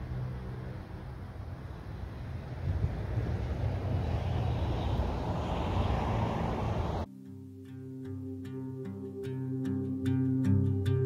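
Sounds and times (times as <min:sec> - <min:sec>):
wind buffeting microphone: 0:00.0 - 0:07.1.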